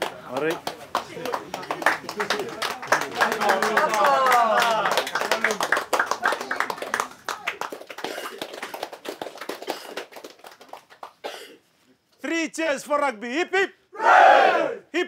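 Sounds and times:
group clapping: 0:00.0 - 0:11.2
cheering shouts: 0:03.4 - 0:05.0, 0:14.0 - 0:14.8.

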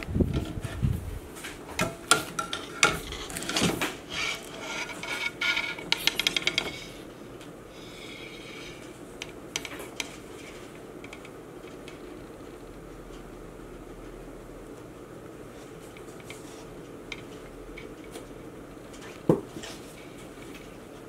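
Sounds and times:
faint room noise: 0:00.0 - 0:21.0.

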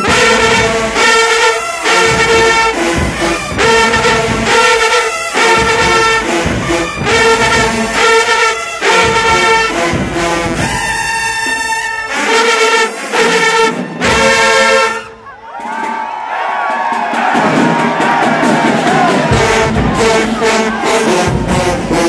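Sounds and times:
crowd cheering and shouting: 0:00.0 - 0:12.5, 0:13.2 - 0:22.0
marching band brass playing: 0:00.0 - 0:22.0.

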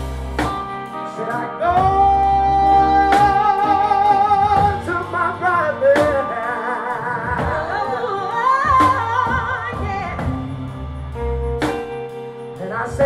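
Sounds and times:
live soul band playing: 0:00.0 - 0:13.0
woman and man singing: 0:01.1 - 0:10.6
drum hits: 0:08.6 - 0:12.2.

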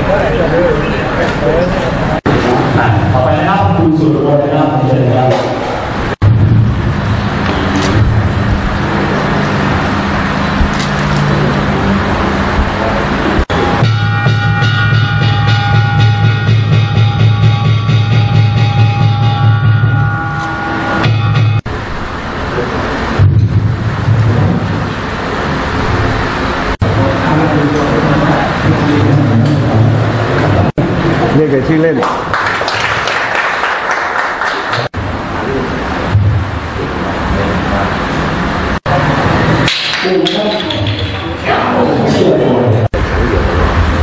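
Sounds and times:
music with steady beat: 0:12.5 - 0:21.6
indistinct voices: 0:34.9 - 0:44.0.

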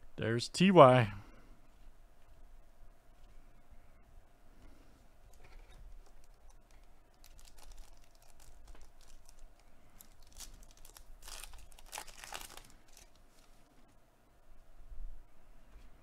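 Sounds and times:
foil wrapper crinkling: 0:05.3 - 0:13.7.

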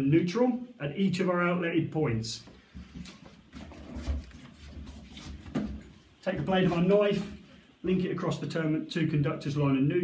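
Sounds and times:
handling knocks and rustles: 0:02.8 - 0:07.4.

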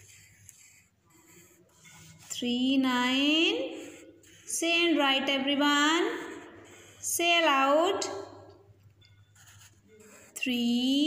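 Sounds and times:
pencil writing on paper: 0:00.0 - 0:11.0
woman speaking: 0:02.3 - 0:03.9, 0:04.5 - 0:06.4, 0:07.1 - 0:08.4, 0:10.4 - 0:11.0.

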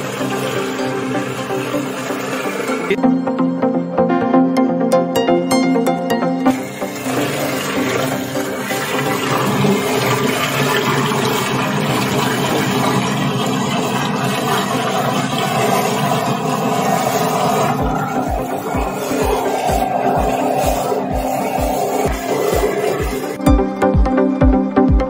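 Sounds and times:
paint mixer rushing and splashing: 0:00.0 - 0:03.0, 0:06.4 - 0:23.5
background music with beat: 0:00.0 - 0:11.3, 0:17.7 - 0:25.0.

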